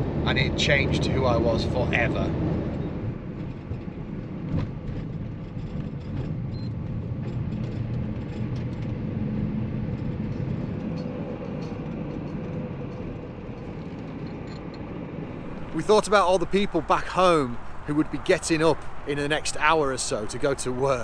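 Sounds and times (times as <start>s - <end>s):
vehicle engine and road rumble: 0.0s - 21.0s.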